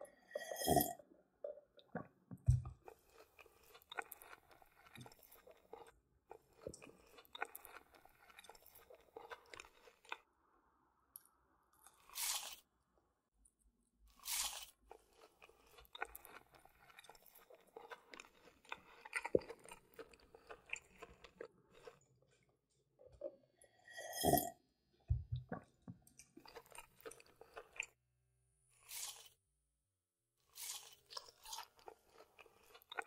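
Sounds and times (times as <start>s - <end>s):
chewing and crunching food: 0.1s - 10.3s, 11.2s - 12.8s, 14.0s - 28.0s, 28.6s - 29.5s, 30.4s - 33.0s.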